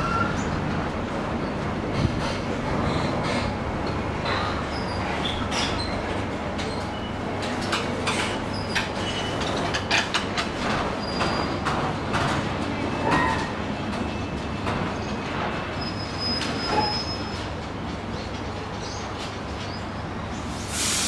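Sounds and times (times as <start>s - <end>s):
train wheels clicking over rail joints: 1.9s - 19.6s.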